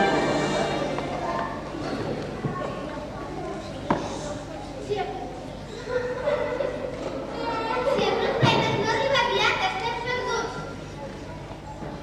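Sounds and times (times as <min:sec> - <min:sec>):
child speaking: 0:02.5 - 0:11.6.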